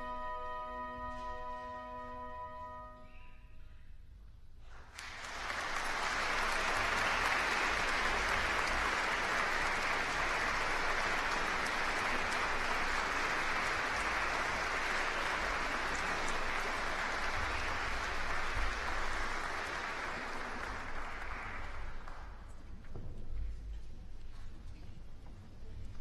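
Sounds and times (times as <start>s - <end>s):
audience applause: 4.7s - 22.5s.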